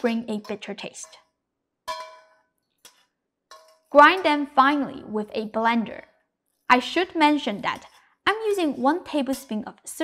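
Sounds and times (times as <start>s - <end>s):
metal clink: 1.8s - 2.4s.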